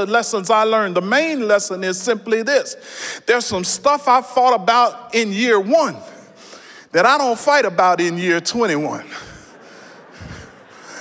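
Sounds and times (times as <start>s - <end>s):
breath near microphone: 2.8s - 3.3s, 6.3s - 6.9s, 9.1s - 11.0s
soft laughter: 9.1s - 11.0s.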